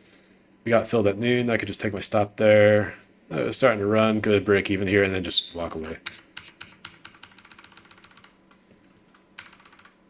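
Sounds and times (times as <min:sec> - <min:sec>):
computer keyboard typing: 0:05.9 - 0:10.0.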